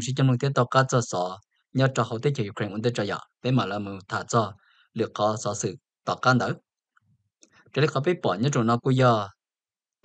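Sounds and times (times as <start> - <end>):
narrator speaking: 0.0 - 6.8, 7.7 - 9.5.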